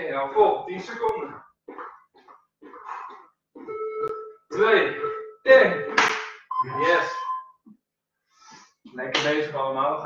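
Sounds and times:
sharp breath: 8.3s - 8.8s.

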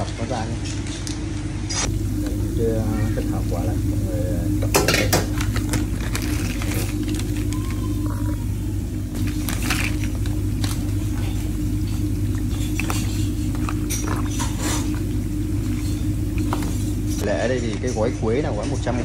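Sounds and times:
steady low hum: 0.0s - 19.0s
onions crackling in hot oil: 1.9s - 17.2s.

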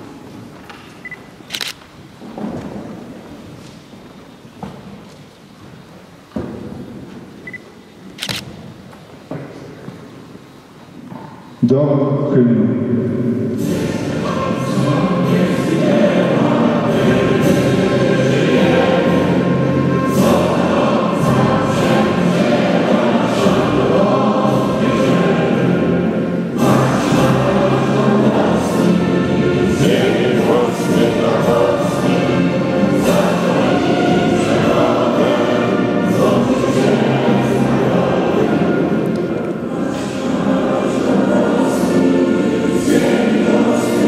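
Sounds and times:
high beep: 7.4s - 7.6s
choir singing: 13.0s - 44.0s.

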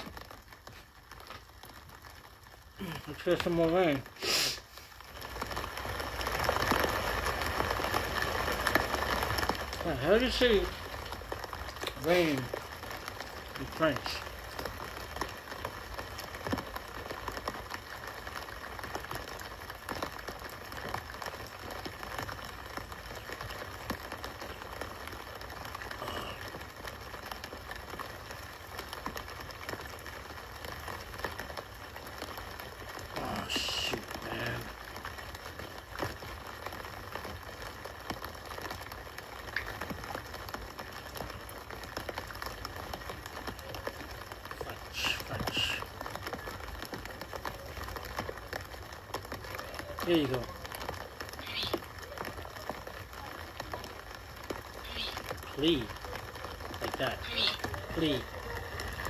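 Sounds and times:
rain falling on a street: 0.0s - 59.0s.

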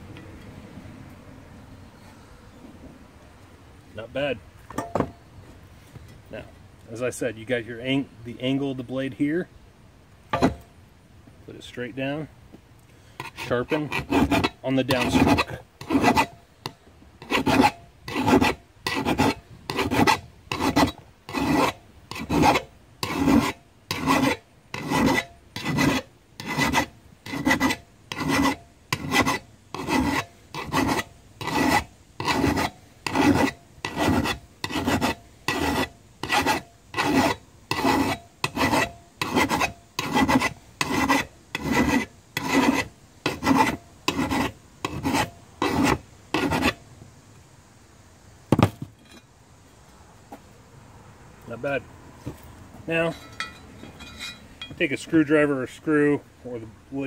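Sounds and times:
file rasping on metal blade: 13.2s - 16.4s, 17.2s - 46.8s.

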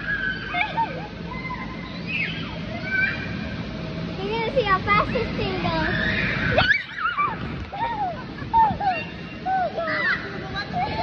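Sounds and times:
children calling out: 0.0s - 3.7s, 5.2s - 11.0s
children laughing: 0.2s - 3.4s, 4.4s - 11.0s.

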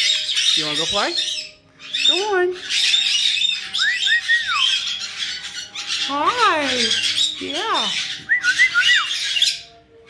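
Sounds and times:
parrot harsh squawking: 0.0s - 9.7s
parrot warbling whistles: 3.7s - 4.8s.

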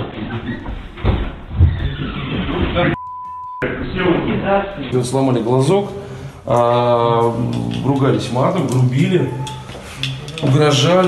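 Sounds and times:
indistinct men's voices: 3.6s - 11.0s.

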